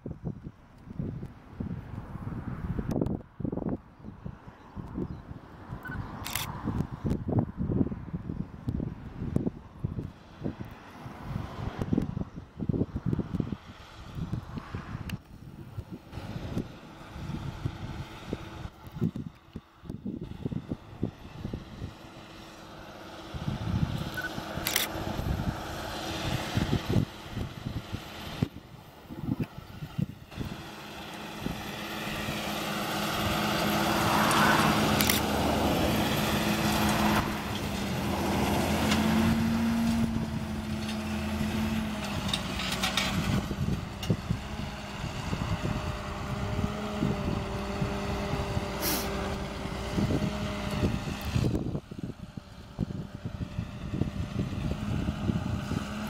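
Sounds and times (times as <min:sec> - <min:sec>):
tractor diesel engine pulling: 0:08.9 - 0:56.0.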